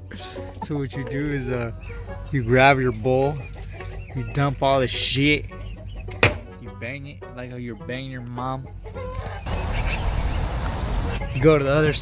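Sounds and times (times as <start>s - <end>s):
chickens calling: 0.0s - 12.0s.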